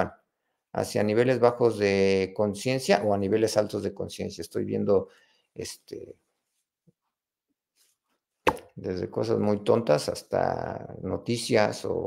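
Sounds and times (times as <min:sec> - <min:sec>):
man talking: 0:00.0 - 0:06.2, 0:08.7 - 0:12.0.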